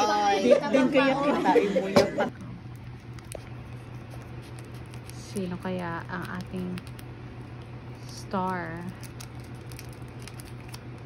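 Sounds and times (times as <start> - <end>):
low steady hum: 0.0 - 11.0
foil sachet crinkling: 2.6 - 11.0.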